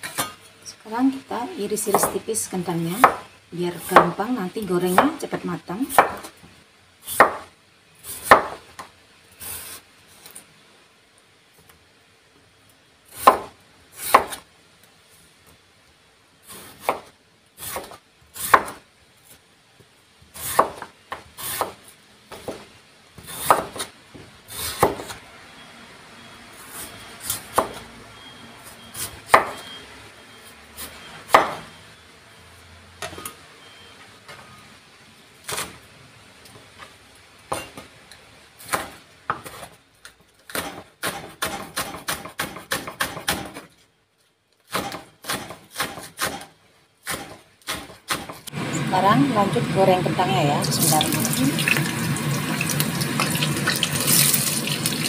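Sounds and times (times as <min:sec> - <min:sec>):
fast knife chopping on board: 0:03.0 - 0:03.2, 0:05.9 - 0:06.3, 0:07.1 - 0:07.5, 0:08.2 - 0:08.6, 0:40.5 - 0:43.6, 0:44.7 - 0:48.4
knife slicing potatoes on board: 0:07.0 - 0:08.6, 0:16.5 - 0:18.8, 0:20.4 - 0:22.6, 0:23.2 - 0:23.9, 0:44.7 - 0:48.4.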